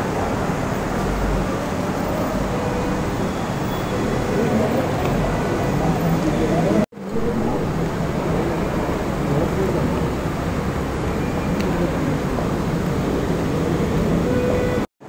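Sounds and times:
hubbub of many voices: 0.0 - 14.9
road traffic: 0.0 - 14.9.

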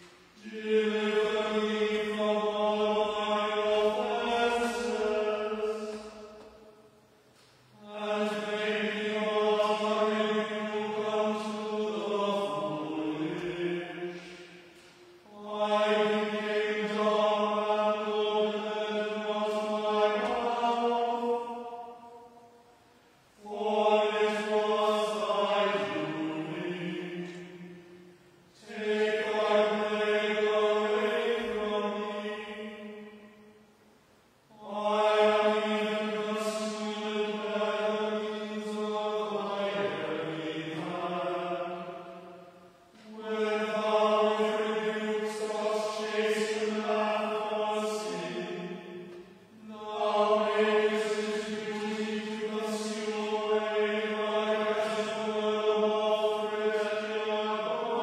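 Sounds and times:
voices chanting in unison: 0.0 - 6.7, 7.7 - 22.7, 23.3 - 33.6, 34.5 - 58.0.

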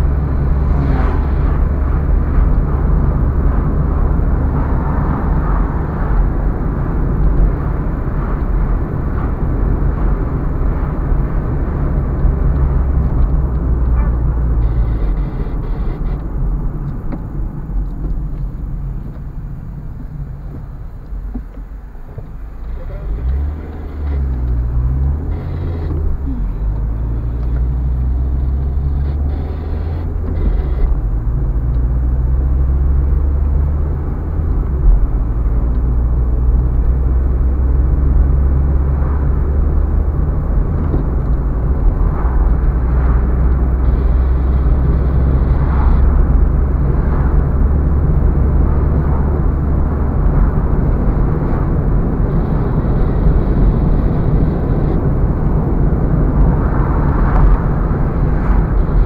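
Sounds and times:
car engine and tyre drone: 0.0 - 59.0.

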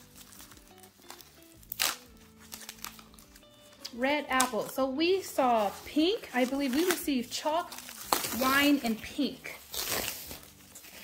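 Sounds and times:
plastic wrapping crinkling and tearing: 0.0 - 11.0.

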